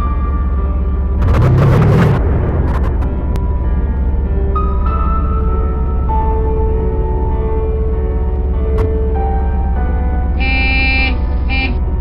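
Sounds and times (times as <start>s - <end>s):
background music: 0.0s - 12.0s
steady low rumble: 0.0s - 12.0s
horn honks: 10.2s - 12.0s.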